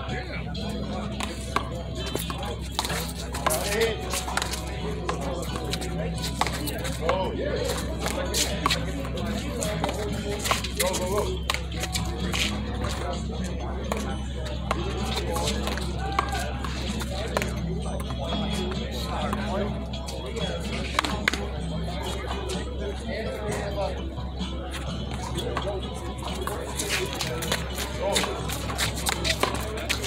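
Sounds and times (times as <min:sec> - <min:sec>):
background music: 0:00.0 - 0:30.0
people talking: 0:00.0 - 0:30.0.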